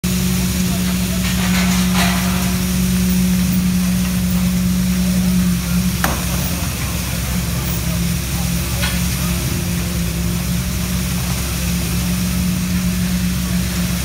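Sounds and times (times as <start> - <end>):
machinery engine hum: 0.1 - 14.0
light knocks: 6.0 - 6.7
sharp metallic clank: 6.0 - 7.0.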